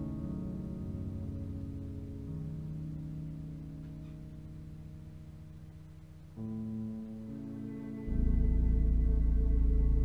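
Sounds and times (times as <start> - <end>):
slow instrumental music: 0.0 - 10.0.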